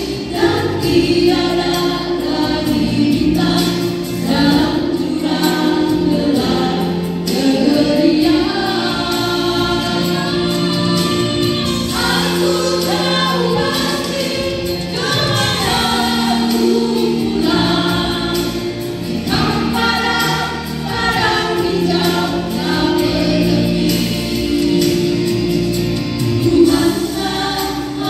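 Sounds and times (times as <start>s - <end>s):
women singing into microphones: 0.0s - 28.0s.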